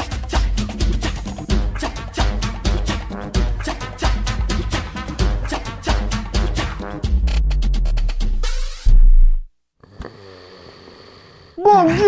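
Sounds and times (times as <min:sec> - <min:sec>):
bass-heavy music: 0:00.0 - 0:09.5
man snoring softly: 0:09.8 - 0:11.6.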